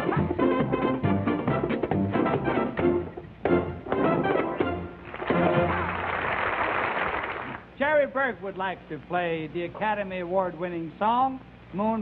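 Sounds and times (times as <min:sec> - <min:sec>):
dance band playing samba: 0:00.0 - 0:06.2
audience applause: 0:05.0 - 0:07.6.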